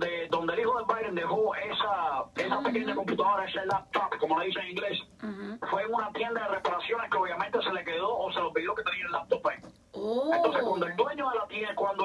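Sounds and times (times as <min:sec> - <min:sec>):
person talking: 0:00.5 - 0:06.6, 0:10.0 - 0:12.0.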